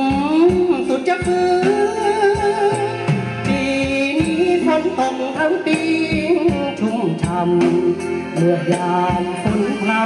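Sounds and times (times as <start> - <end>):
accordion: 0.0 - 10.0
drums: 0.0 - 10.0
keyboard: 0.0 - 10.0
man singing: 0.0 - 10.0.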